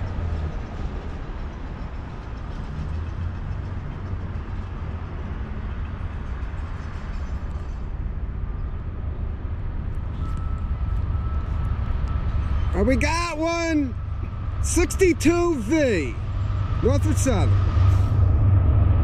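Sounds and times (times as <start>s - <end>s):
distant road traffic: 0.0s - 19.0s
faint high whine: 10.0s - 19.0s.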